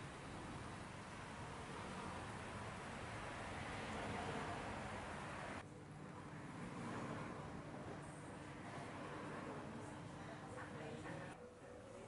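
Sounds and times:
traffic hiss: 0:00.0 - 0:05.6
faint room hum: 0:00.0 - 0:12.0.

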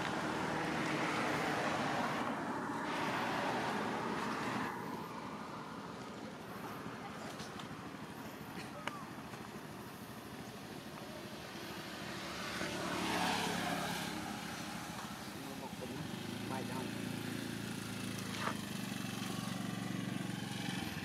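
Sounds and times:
vehicle engine running: 0:13.0 - 0:21.0.

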